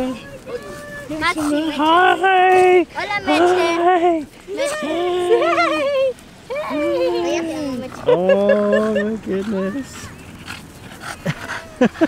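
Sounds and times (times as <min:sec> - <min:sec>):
dog panting: 0:00.4 - 0:03.8, 0:07.4 - 0:12.0.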